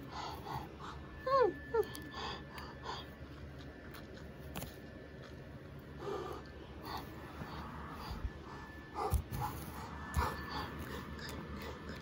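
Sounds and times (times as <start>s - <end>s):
animal-like vocal noises: 9.0s - 12.0s.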